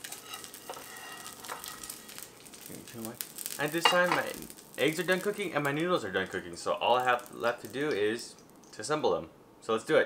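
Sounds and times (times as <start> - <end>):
metal spatula scraping pan: 0.0 - 2.2
oil sizzling around frying egg: 0.0 - 8.8.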